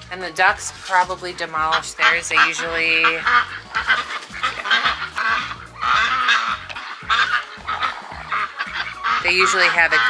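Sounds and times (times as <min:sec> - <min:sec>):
music: 0:00.0 - 0:10.0
ducks quacking: 0:00.2 - 0:10.0.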